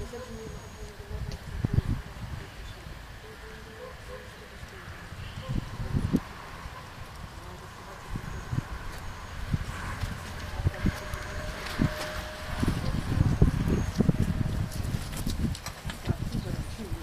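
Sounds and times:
wind buffeting microphone: 0.0 - 3.0, 4.7 - 17.0.

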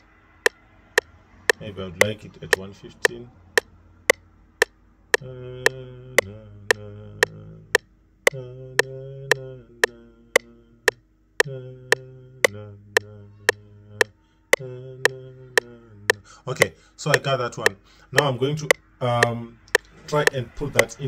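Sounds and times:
metronome clicks: 0.0 - 0.6, 10.4 - 21.0
man humming a melody: 5.2 - 17.8.

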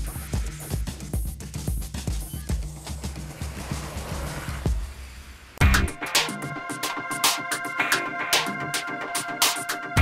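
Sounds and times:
electronic music with drum beat: 0.0 - 10.0.

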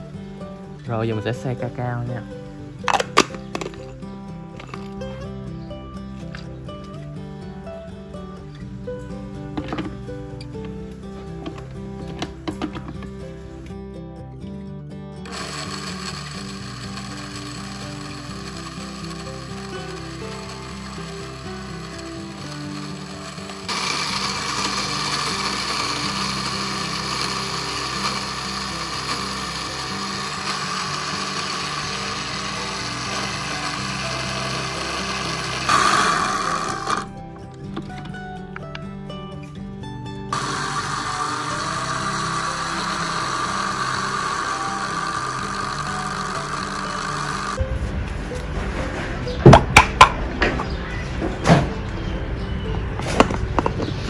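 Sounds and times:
background music: 0.0 - 54.0
blender motor grinding beans: 2.8 - 3.9, 4.6 - 5.0, 15.2 - 37.2, 40.3 - 47.6.

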